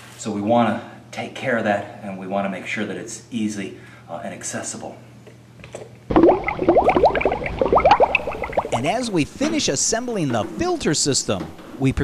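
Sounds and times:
bubbling bloops: 6.1s - 9.4s.

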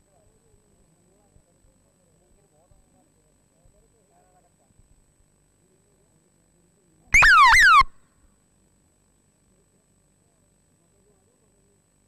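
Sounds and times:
electronic tones sliding downward: 7.2s - 7.9s.

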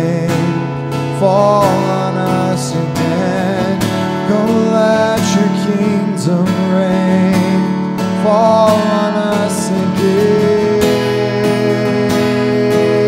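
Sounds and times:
acoustic guitar strumming: 0.0s - 13.0s
man singing wordless notes: 0.0s - 13.0s.

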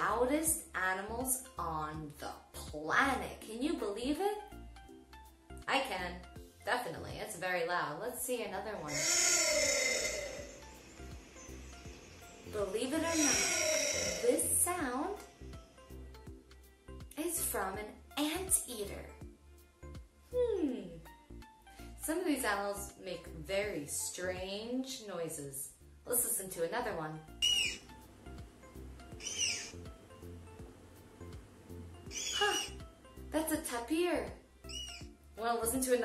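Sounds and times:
quiet background music: 0.0s - 36.0s
tapir whistling squeal: 9.0s - 14.4s, 27.4s - 27.8s, 29.2s - 29.8s, 32.1s - 32.8s, 34.7s - 35.1s.

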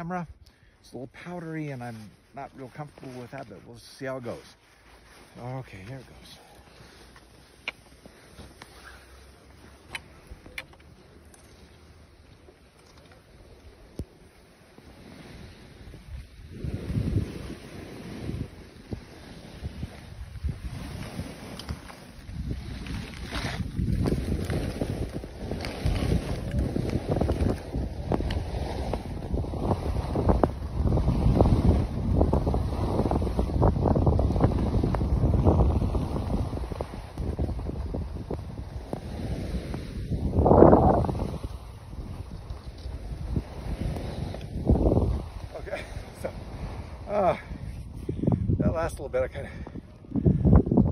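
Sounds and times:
wind buffeting microphone: 5.4s - 50.9s.

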